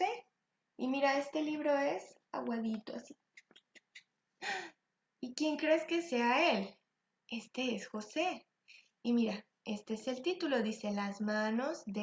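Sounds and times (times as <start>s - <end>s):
woman gasping: 4.4s - 4.8s.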